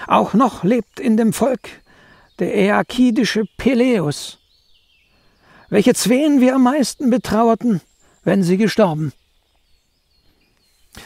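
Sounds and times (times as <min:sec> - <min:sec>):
man reading aloud: 0:00.0 - 0:04.4, 0:05.6 - 0:09.2.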